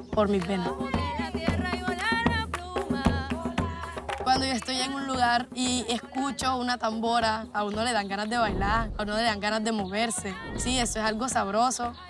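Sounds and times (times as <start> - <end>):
hand drum beating: 0.0 - 11.6.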